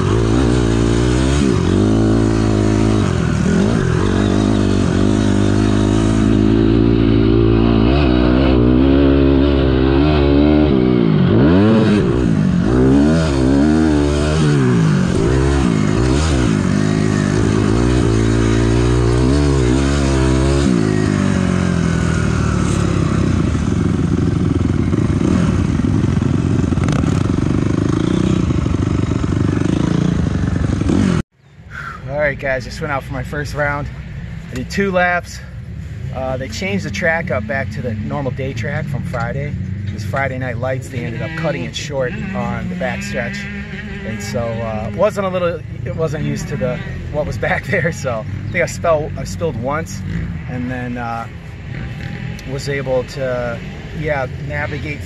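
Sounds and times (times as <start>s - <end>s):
motorcycle engine revving: 0.0s - 31.3s, 32.6s - 55.0s.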